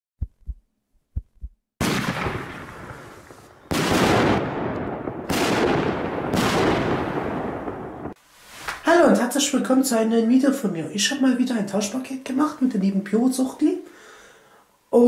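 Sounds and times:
short low thumps: 0.2 - 1.6.

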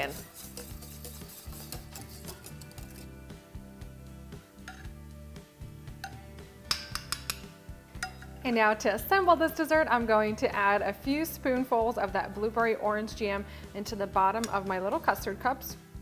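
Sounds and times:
whisk scraping metal saucepan: 0.0 - 3.4
background music: 0.0 - 16.0
metal spoon clinking on glass: 4.6 - 4.9, 6.0 - 8.4.

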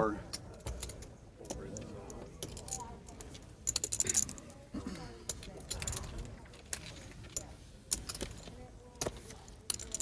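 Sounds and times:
poker chips clicking: 0.6 - 4.6, 5.3 - 10.0.

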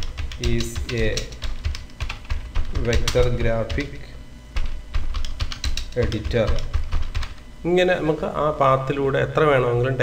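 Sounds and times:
computer keyboard typing: 0.0 - 4.0, 4.6 - 7.4.

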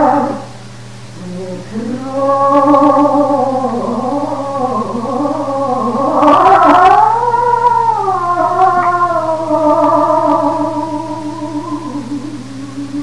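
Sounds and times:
low recording hum: 0.0 - 13.0
tenor voice singing with vibrato: 0.0 - 13.0.

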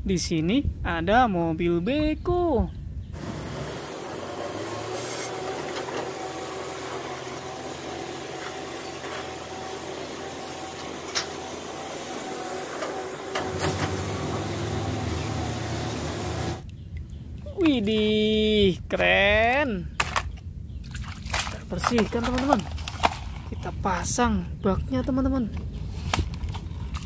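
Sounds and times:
bucket scraping soil: 3.2 - 16.6
excavator diesel engine running: 3.2 - 16.6.

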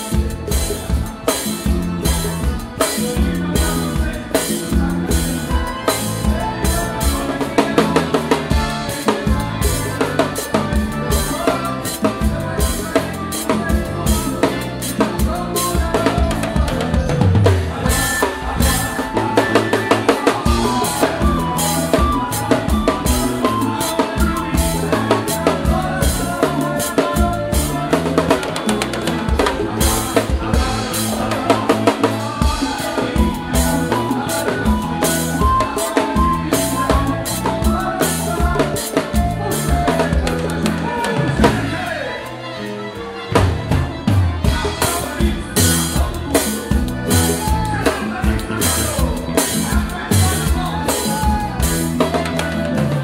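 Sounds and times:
drum kit beat: 0.0 - 42.3, 43.3 - 53.0
bass: 0.0 - 53.0
keyboard: 0.0 - 53.0.

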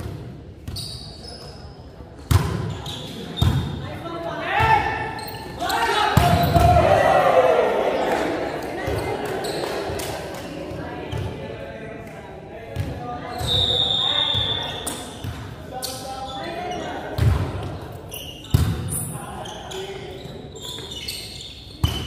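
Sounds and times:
players' voices chattering: 0.3 - 22.0.

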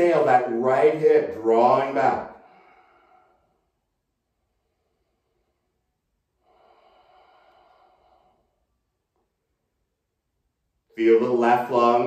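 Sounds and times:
man breathing slowly: 2.3 - 9.0.

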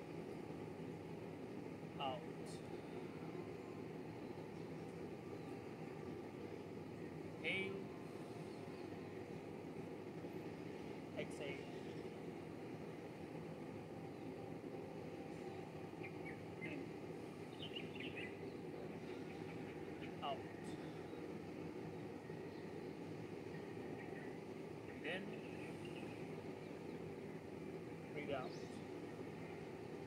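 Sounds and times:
outdoor background noise: 0.0 - 30.0.

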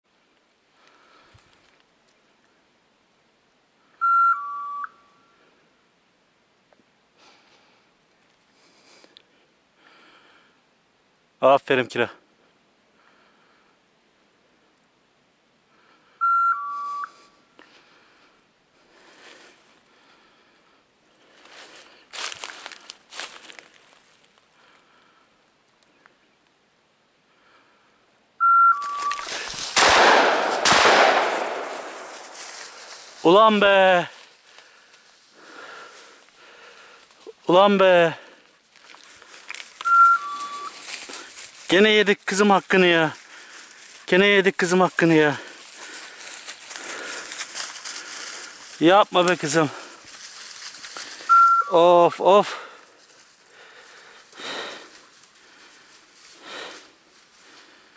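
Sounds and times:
two-tone electronic beep: 4.0 - 4.9, 16.2 - 17.1, 28.4 - 29.2, 39.8 - 40.7, 51.3 - 51.7
shotgun shots ringing out: 29.7 - 32.3.

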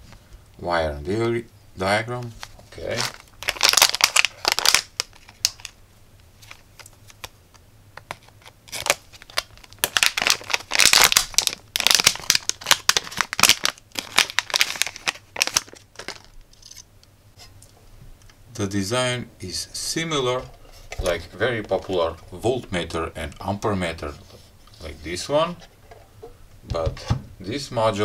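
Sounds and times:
plastic bag crinkling: 2.3 - 5.8, 8.1 - 16.8.

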